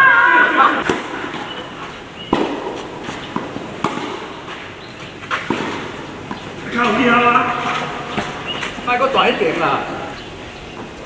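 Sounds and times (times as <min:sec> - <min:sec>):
tennis ball hits: 0:00.8 - 0:08.8.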